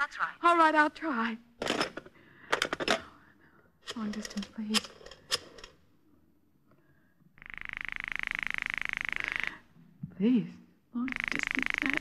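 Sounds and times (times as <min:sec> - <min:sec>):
rapidly pulsing telephone ring: 0:07.4 - 0:09.6, 0:11.1 - 0:12.0.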